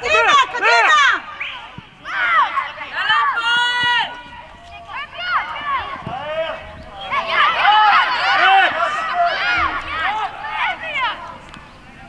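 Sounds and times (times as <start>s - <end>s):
people shouting: 0.0s - 11.4s.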